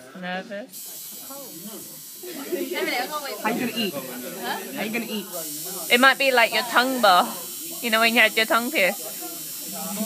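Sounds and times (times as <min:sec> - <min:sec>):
steady high hiss: 0:00.8 - 0:10.0.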